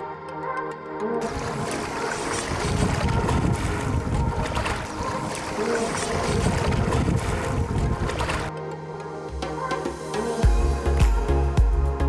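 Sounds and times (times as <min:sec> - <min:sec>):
waves washing onto sandy shore: 0:01.2 - 0:08.5
wind buffeting microphone: 0:02.4 - 0:08.5.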